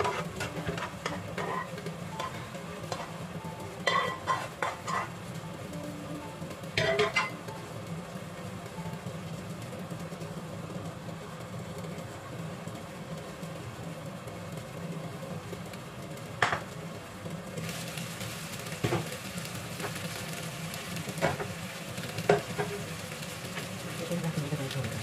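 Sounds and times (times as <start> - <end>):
lid and utensils clinking on pan: 0.0 - 3.1, 3.8 - 5.1, 6.8 - 7.4
fish sizzling in a pan: 0.0 - 10.2, 15.2 - 25.0.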